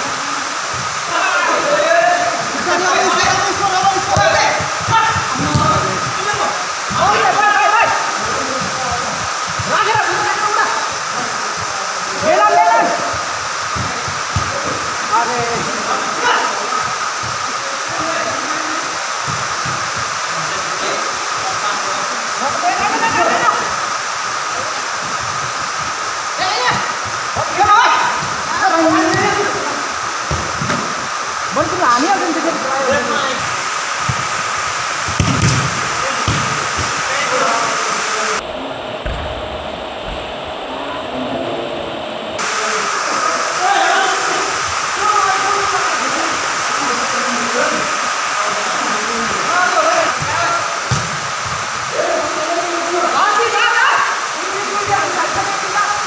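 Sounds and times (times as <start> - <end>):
players shouting and calling: 0.0 - 38.5, 42.4 - 56.0
steady hiss: 0.0 - 56.0.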